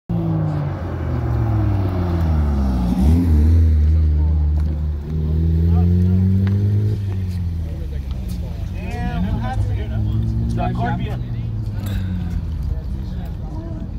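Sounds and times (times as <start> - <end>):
car engine revving: 0.1 - 13.9
voices: 0.5 - 13.9.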